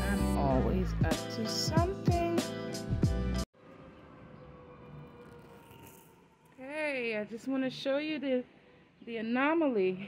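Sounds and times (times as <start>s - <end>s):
woman speaking: 0.0s - 2.4s, 6.6s - 10.0s.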